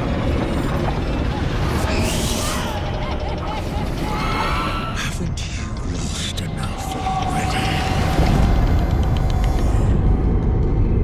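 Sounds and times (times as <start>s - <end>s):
dense low rumble: 5.2s - 11.0s.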